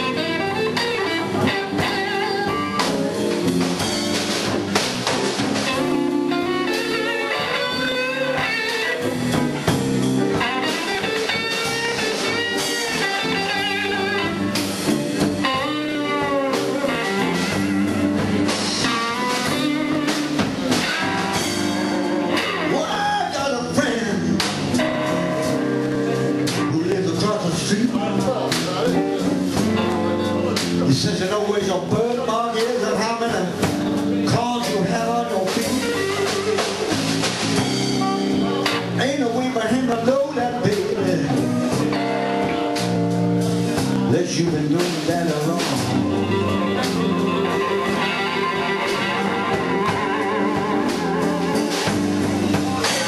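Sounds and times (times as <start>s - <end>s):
drum and cymbal hits: 0.0s - 31.3s, 32.6s - 39.9s, 40.5s - 53.0s
bass and drums: 0.0s - 53.0s
electric guitar notes: 0.0s - 53.0s
live blues band playing: 0.0s - 53.0s.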